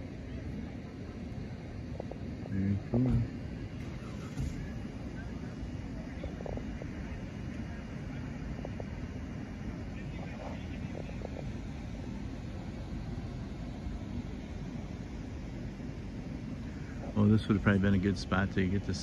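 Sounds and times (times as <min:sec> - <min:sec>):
faint distant voices: 0:00.0 - 0:19.0
low outdoor rumble: 0:00.0 - 0:19.0.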